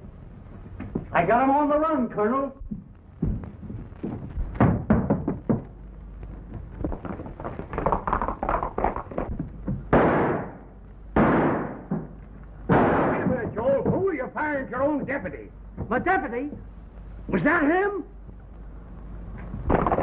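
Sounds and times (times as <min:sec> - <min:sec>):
heavy gun blasts: 0:09.9 - 0:10.6, 0:11.2 - 0:12.1, 0:12.7 - 0:13.8
sharp gunshots: 0:09.9 - 0:12.1, 0:12.7 - 0:13.8.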